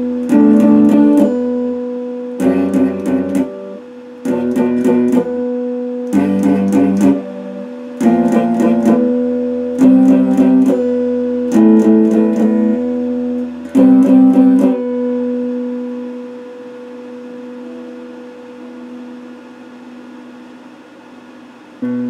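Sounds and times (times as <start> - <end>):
electric guitar notes and chords: 0.0 - 20.7, 21.8 - 22.0.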